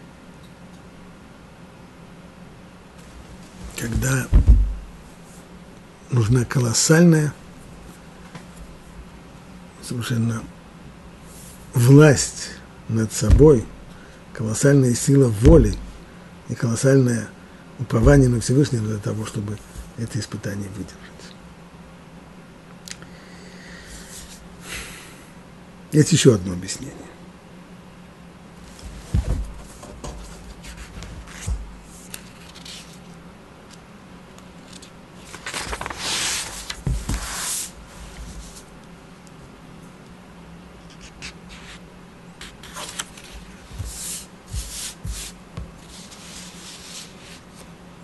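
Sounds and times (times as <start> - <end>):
man inhaling noisily: 23.0 - 25.4
paper rustling: 28.7 - 33.2, 34.6 - 38.7, 42.4 - 47.7.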